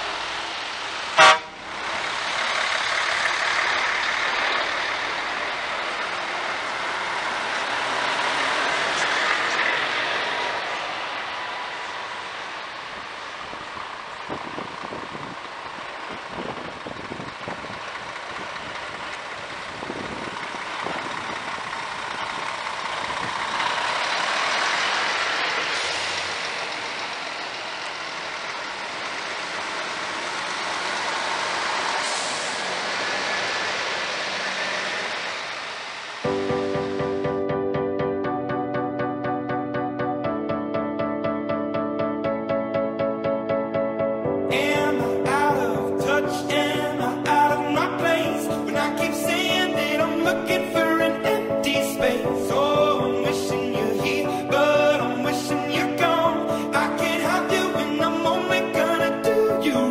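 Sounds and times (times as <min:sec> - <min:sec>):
heavy trucks driving past: 0:00.0 - 0:59.9.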